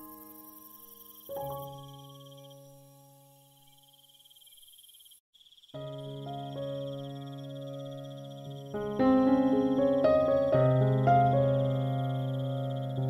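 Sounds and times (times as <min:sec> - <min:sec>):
slow soft piano music: 0:00.0 - 0:04.1, 0:05.8 - 0:13.0.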